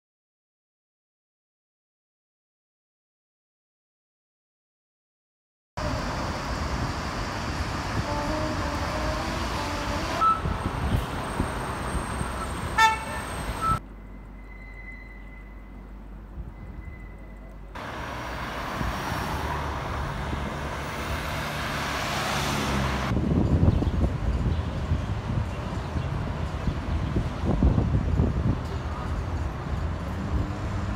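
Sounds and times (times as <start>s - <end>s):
cars passing: 5.8s - 14.5s, 17.5s - 30.9s
short car horn toots: 12.7s - 13.8s.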